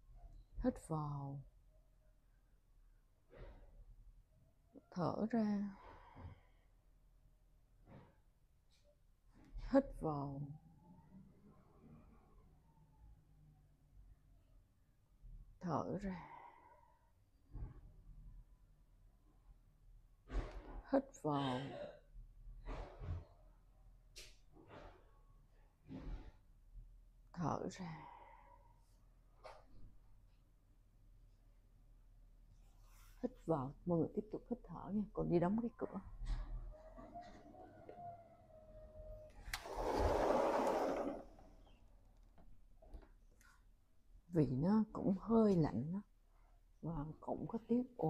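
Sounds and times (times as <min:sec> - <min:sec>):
woman speaking: 0:00.6 - 0:01.4, 0:04.8 - 0:05.8, 0:09.7 - 0:10.6, 0:15.6 - 0:16.3, 0:20.9 - 0:21.8, 0:27.4 - 0:28.0, 0:33.2 - 0:36.1, 0:44.3 - 0:46.1, 0:46.8 - 0:48.0
sliding glass door rolling shut: 0:39.4 - 0:41.6.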